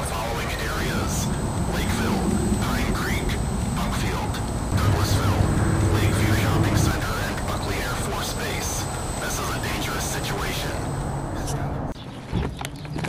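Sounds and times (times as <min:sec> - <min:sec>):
indistinct voices: 0:00.0 - 0:11.9.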